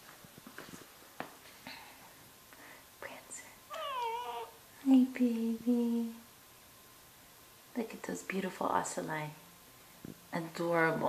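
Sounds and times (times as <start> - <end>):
cat meowing: 3.7 - 4.6.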